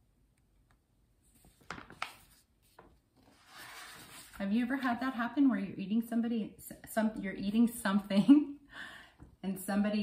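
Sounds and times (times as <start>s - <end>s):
book pages turning: 1.2s - 4.4s.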